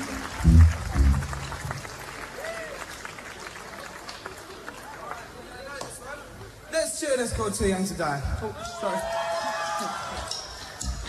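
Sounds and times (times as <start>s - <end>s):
audience clapping and cheering: 0.0s - 5.8s
band's low final note: 0.3s - 1.8s.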